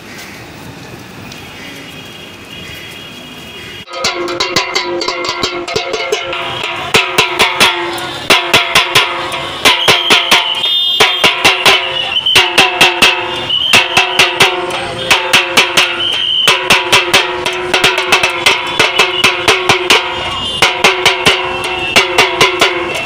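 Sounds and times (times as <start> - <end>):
small drum beaten with sticks: 3.9 - 23.0.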